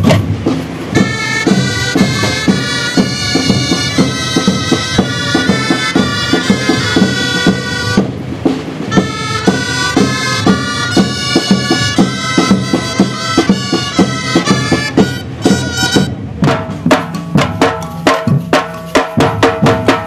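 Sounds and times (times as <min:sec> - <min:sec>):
wind instrument melody: 0:00.0 - 0:16.8
steady drum beat: 0:00.0 - 0:20.0.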